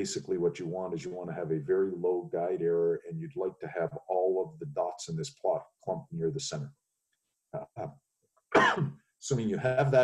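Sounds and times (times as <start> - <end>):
faint throat sounds: 0.0 - 6.5, 7.6 - 7.9
man coughing: 8.6 - 8.9.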